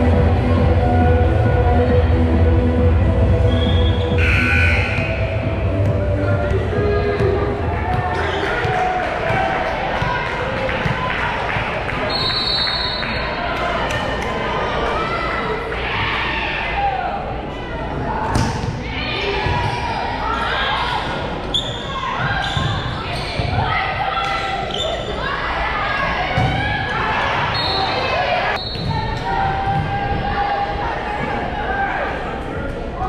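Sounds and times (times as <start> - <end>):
crowd chatter: 0.0 - 33.0
short high whistle: 3.5 - 5.2.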